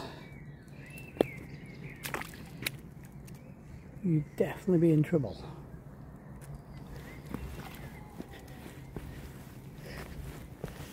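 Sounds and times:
footsteps scuffing on rock: 0:06.8 - 0:10.9.

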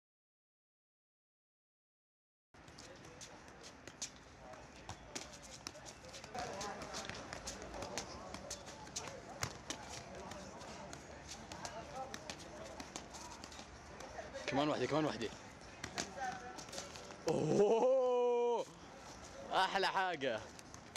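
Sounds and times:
football kicked by feet: 0:02.6 - 0:14.5, 0:15.7 - 0:17.2
background voices talking: 0:02.6 - 0:20.9.

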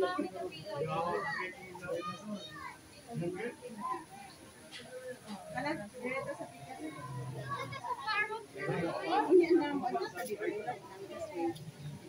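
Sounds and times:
children's voices: 0:00.0 - 0:05.3, 0:06.1 - 0:12.0
people talking at once: 0:00.0 - 0:12.0.

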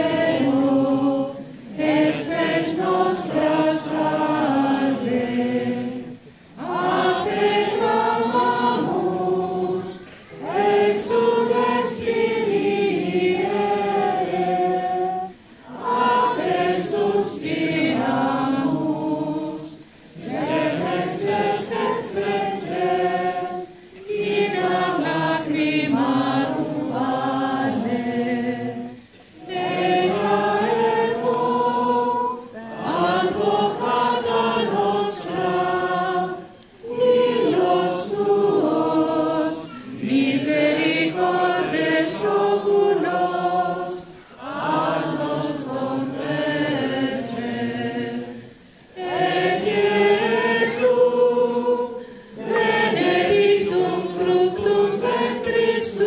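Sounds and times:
group singing a devotional song: 0:00.0 - 0:56.0.

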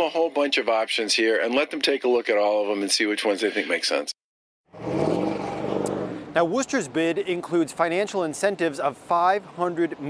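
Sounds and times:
vehicle engine and tyre noise: 0:04.7 - 0:10.0.

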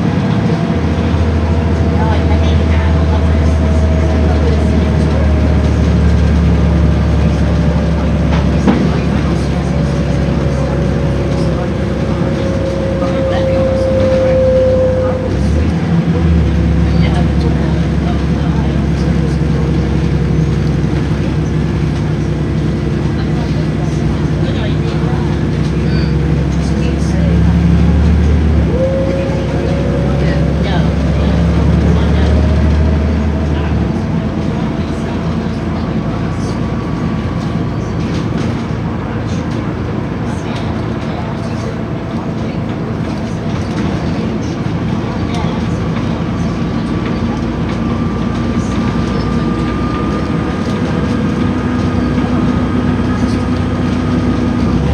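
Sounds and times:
bus diesel engine pulling: 0:00.0 - 0:54.9
road noise: 0:00.0 - 0:54.9.

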